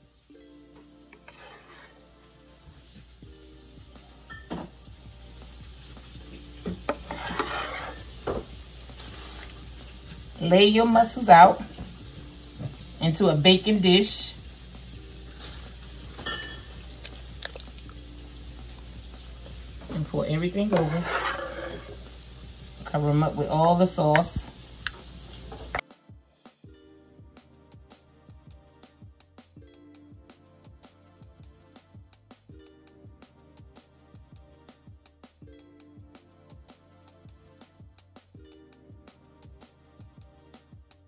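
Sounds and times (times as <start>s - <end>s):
soft background music: 0.0s - 41.0s
wet sauce spatter: 16.7s - 18.0s.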